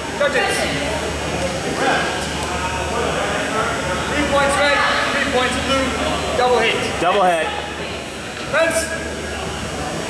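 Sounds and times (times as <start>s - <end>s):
steady low hum: 0.0s - 10.0s
voices murmuring in a hall: 0.0s - 10.0s.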